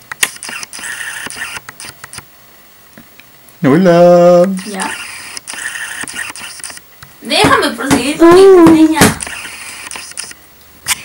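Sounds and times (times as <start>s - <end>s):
camera handling clicks: 0.1s - 2.3s, 4.9s - 6.9s, 9.2s - 11.0s
short mechanical whir: 0.2s - 1.7s, 4.6s - 6.8s.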